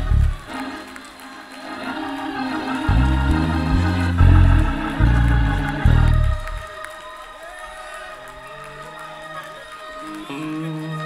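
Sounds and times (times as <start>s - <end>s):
church organ chord: 0.0s - 6.9s
congregation cheering and calling out: 0.0s - 11.0s.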